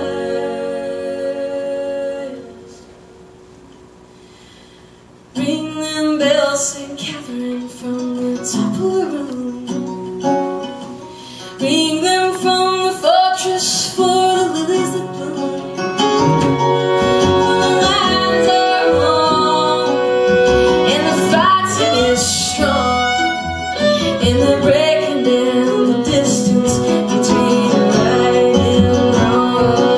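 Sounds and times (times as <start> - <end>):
woman singing: 0.0 - 2.8, 5.4 - 10.1, 11.6 - 16.0, 17.2 - 29.9
acoustic guitar: 0.0 - 29.9
bowed cello: 15.2 - 29.9.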